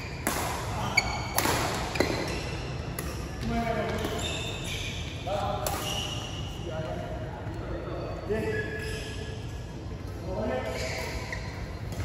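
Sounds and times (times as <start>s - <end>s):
shoes squeaking on court floor: 0.0s - 6.6s, 10.6s - 12.0s
rackets hitting shuttlecock: 0.1s - 4.2s.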